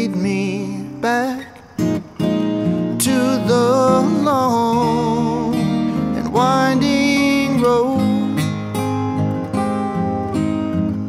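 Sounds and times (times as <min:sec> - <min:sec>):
man singing: 0:00.0 - 0:01.8, 0:02.9 - 0:08.8
acoustic guitars strumming: 0:00.0 - 0:11.0.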